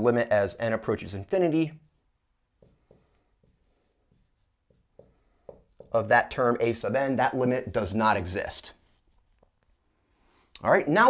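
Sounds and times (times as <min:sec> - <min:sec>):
marker writing on whiteboard: 0:01.8 - 0:08.0.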